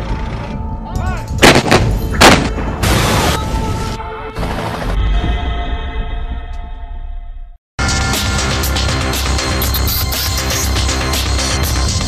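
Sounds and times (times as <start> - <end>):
cannon shots: 1.4 - 3.4.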